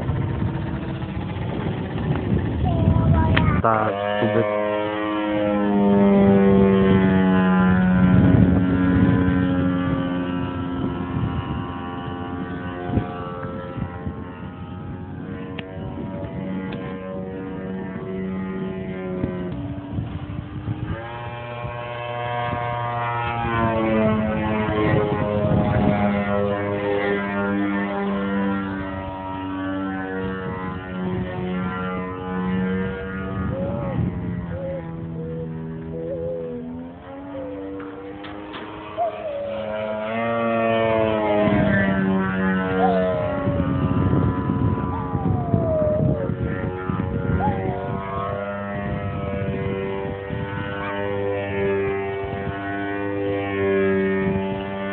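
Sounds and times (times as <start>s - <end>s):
model airplane engine: 0.0s - 54.9s.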